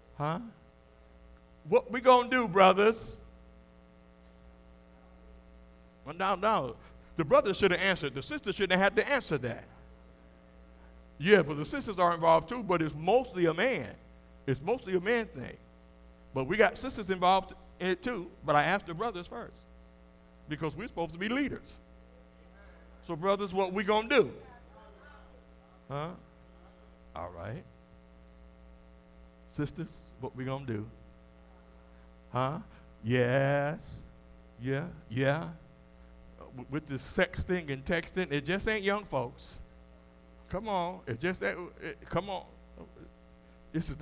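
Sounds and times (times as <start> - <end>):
electrical mains hum: 0.0 - 44.0.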